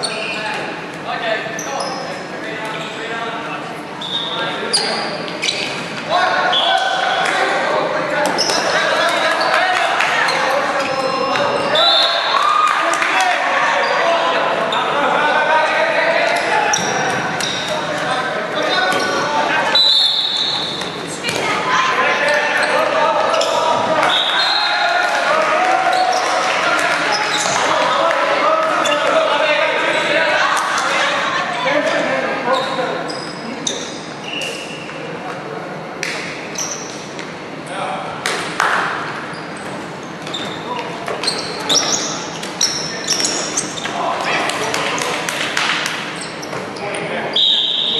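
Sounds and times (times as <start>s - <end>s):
players shouting: 6.1s - 32.0s.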